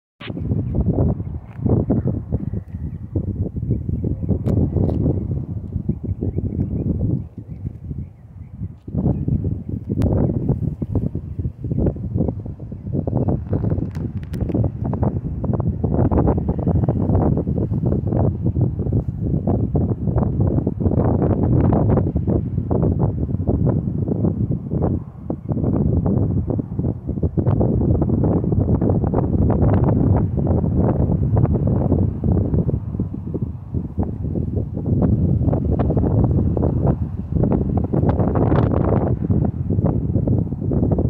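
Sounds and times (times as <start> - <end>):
wind buffeting microphone: 0.2 - 41.0.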